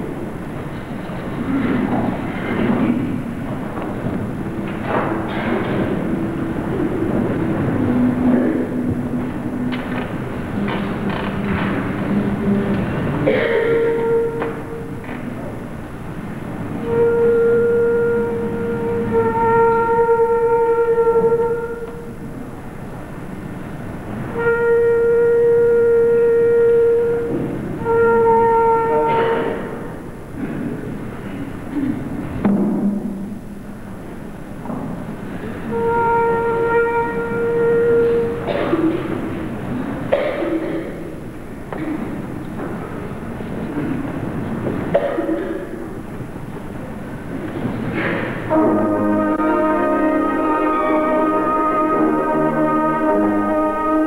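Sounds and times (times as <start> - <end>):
wind band playing slow melodies: 0.0 - 32.4, 34.2 - 54.0.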